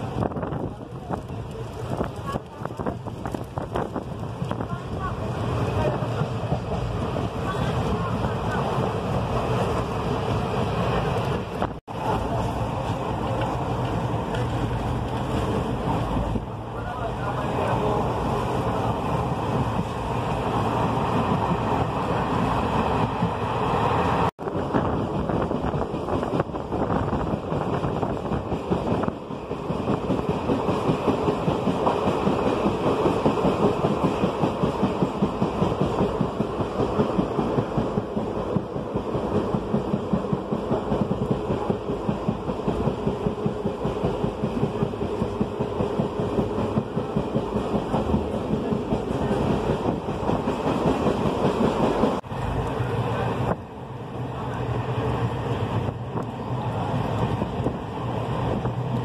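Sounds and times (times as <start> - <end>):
train rumble: 0.0 - 59.0.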